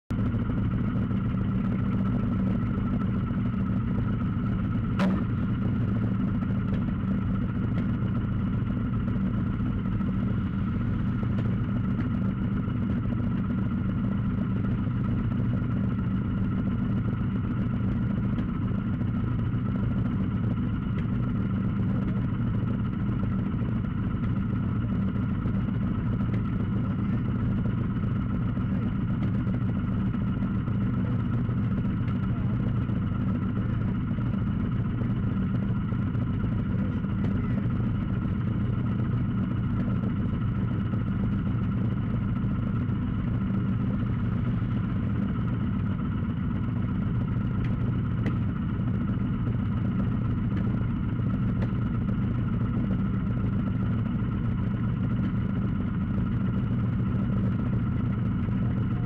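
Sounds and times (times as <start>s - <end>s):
motorcycle engine idling: 0.1s - 59.0s.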